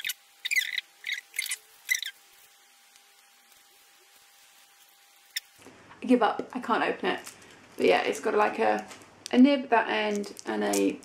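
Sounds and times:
plastic packaging crinkling: 0.0 - 5.7, 6.5 - 11.0
faint steady hum: 0.0 - 11.0.

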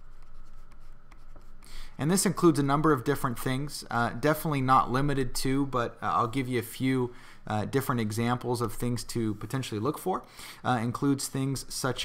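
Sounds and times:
stylus scratching on tablet: 0.0 - 2.4
low steady hum: 0.0 - 12.0.

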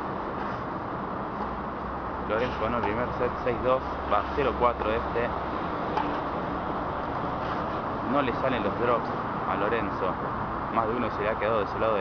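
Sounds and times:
road traffic: 0.0 - 12.0.

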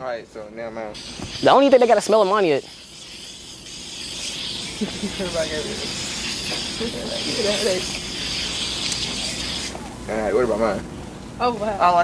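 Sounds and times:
aerosol spray hissing: 0.9 - 9.9.

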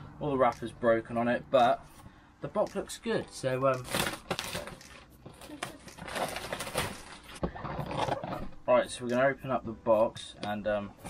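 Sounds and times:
plastic shrink wrap crinkling: 3.8 - 8.0.

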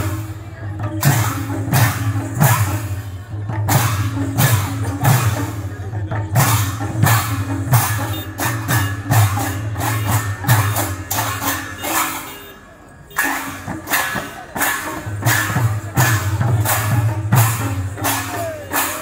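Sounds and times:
brass hand cymbals clashing: 0.0 - 5.8, 6.4 - 19.0
barrel drums: 0.0 - 19.0.

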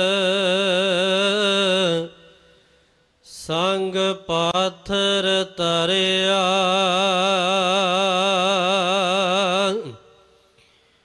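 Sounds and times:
person singing devotional song: 0.0 - 10.6.

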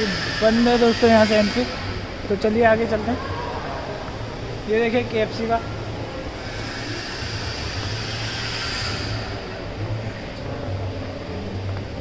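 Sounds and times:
hiss: 0.0 - 2.0, 6.3 - 10.4.

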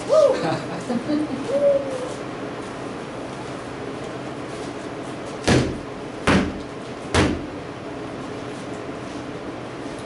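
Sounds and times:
loud sharp thuds with ringing: 5.4 - 7.5.

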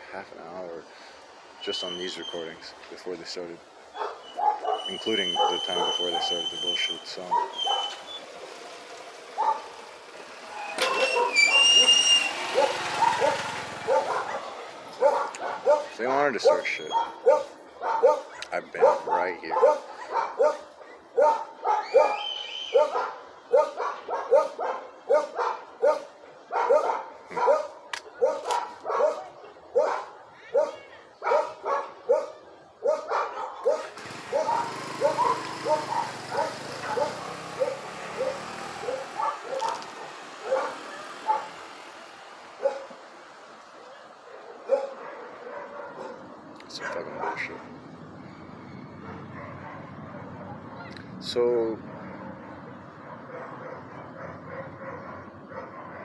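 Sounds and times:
dog barking: 3.9 - 8.0, 9.4 - 9.8, 10.8 - 41.7, 42.6 - 43.0, 43.7 - 47.8, 49.0 - 51.0, 51.8 - 56.0.

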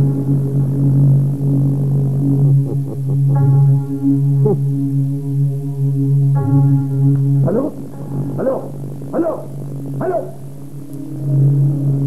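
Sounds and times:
low droning background music: 0.0 - 12.0.

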